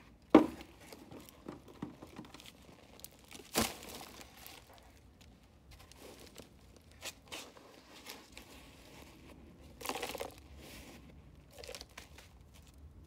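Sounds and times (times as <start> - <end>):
plastic pot and soil rustling: 0.1 - 13.0.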